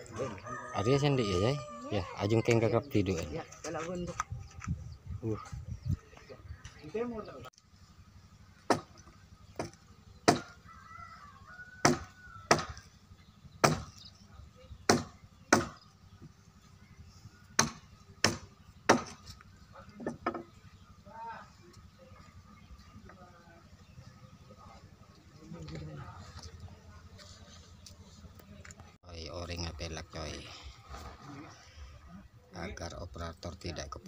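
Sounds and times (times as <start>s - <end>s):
voices: 0.0s - 34.0s
hatchet chopping timber: 8.7s - 10.5s, 11.8s - 12.8s, 13.6s - 14.0s, 14.9s - 15.8s, 17.6s - 19.2s.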